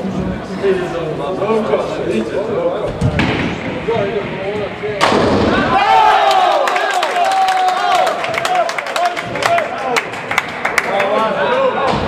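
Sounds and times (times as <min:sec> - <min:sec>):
bowling ball crashing into pins: 0:05.0 - 0:05.9.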